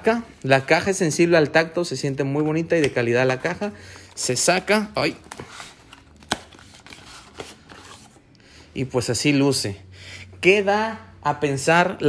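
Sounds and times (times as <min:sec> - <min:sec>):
cardboard scraping and rustling: 0:05.0 - 0:08.2.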